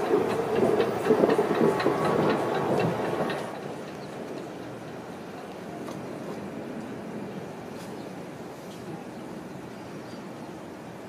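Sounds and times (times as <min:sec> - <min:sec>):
funicular wheels rumbling on track: 0:00.0 - 0:08.3.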